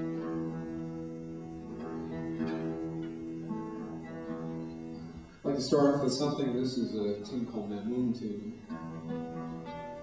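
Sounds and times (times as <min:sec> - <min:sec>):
acoustic guitar strings plucked: 0:00.0 - 0:06.2, 0:08.6 - 0:10.0.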